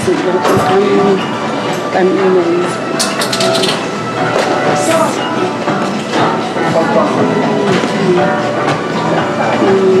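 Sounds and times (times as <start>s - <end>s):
voices: 0.0s - 1.3s, 1.9s - 10.0s
music playing: 0.0s - 10.0s.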